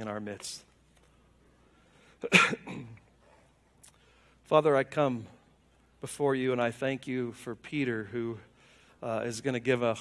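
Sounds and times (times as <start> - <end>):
man coughing: 2.2 - 3.1.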